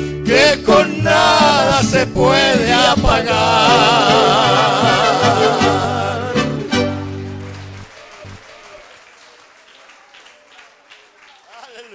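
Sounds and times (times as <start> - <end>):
audience applause: 4.0 - 11.9.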